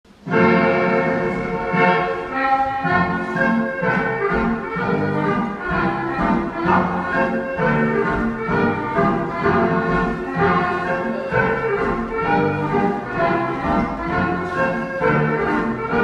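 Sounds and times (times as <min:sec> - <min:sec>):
dance band playing: 0:00.1 - 0:16.0.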